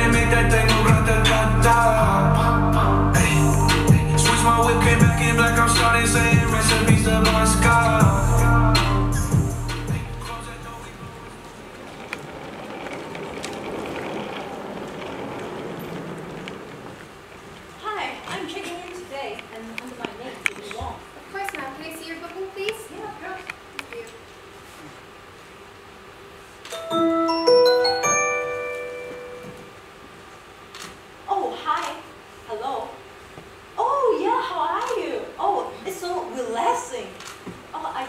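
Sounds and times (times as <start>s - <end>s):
suitcase rolling on wooden floor: 11.0s - 19.1s
marimba phone ringtone: 26.8s - 29.6s.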